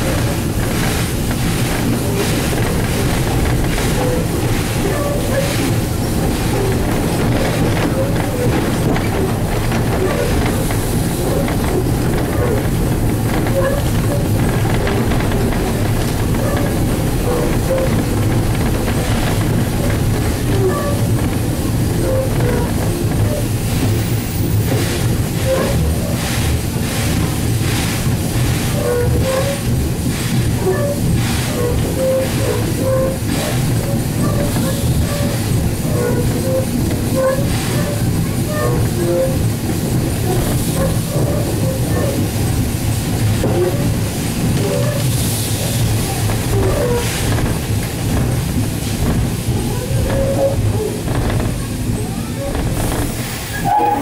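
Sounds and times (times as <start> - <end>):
steam locomotive rumbling: 0.0 - 54.0
wheels clicking over rail joints: 0.0 - 54.0.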